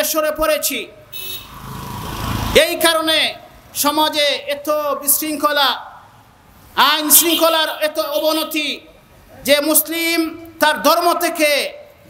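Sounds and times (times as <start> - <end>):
man talking: 0.0 - 1.0, 2.6 - 6.0, 6.8 - 11.9
passing vehicle rumble: 1.1 - 3.8.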